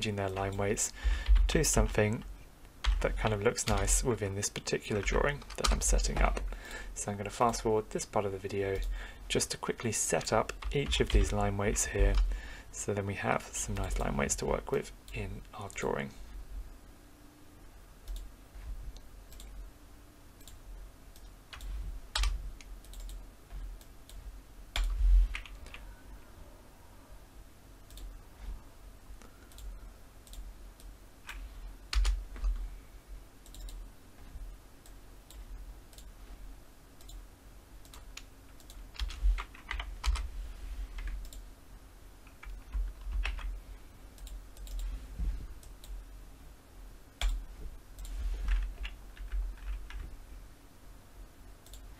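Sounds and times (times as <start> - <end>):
keyboard keys clicking: 37.8 - 40.2, 42.3 - 43.5.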